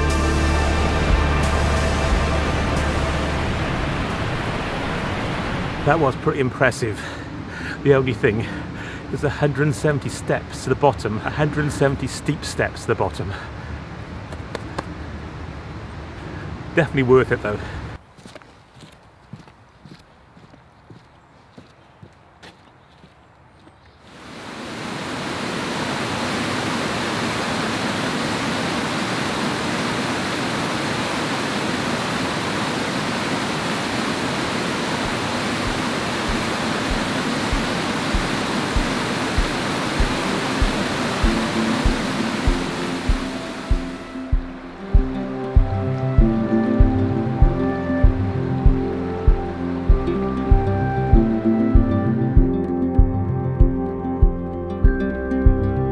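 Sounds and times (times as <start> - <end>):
steady music beat: 0.0 - 4.4, 35.1 - 55.8
waterfall rushing: 0.0 - 13.8, 24.1 - 52.3
footsteps on wooden boardwalk: 18.0 - 24.0, 34.9 - 54.4.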